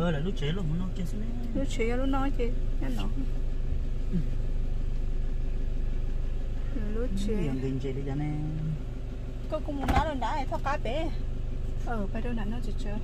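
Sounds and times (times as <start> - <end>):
car engine humming: 0.0 - 13.0.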